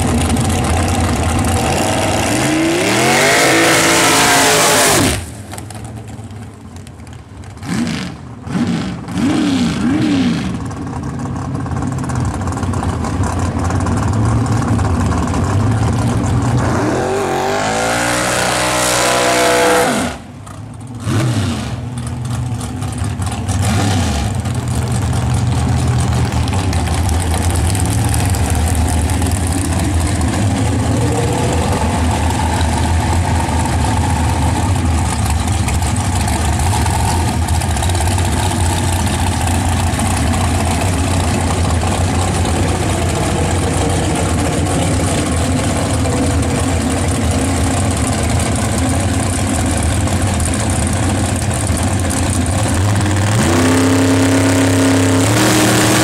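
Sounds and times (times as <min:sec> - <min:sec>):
dragster engine lumpy idle: 0:00.0 - 0:02.8, 0:05.2 - 0:09.2, 0:10.4 - 0:16.7, 0:20.2 - 0:21.1, 0:21.7 - 0:55.2
drag racing engine revving: 0:00.0 - 0:06.0, 0:07.4 - 0:11.5, 0:12.3 - 0:56.0
engine throttle blips: 0:00.0 - 0:56.0.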